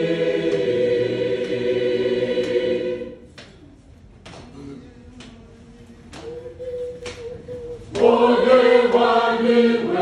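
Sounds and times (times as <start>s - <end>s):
church choir singing: 0.0s - 3.3s, 7.9s - 10.0s.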